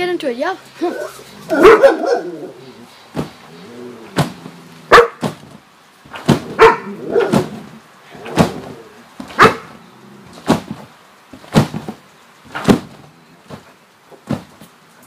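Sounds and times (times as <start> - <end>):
dog barking: 1.5 - 2.4, 4.9 - 5.2, 6.6 - 7.5, 9.3 - 9.7.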